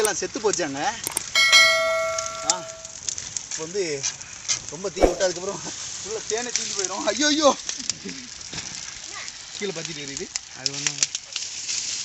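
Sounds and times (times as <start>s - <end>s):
bright bell ding: 1.4s - 2.9s.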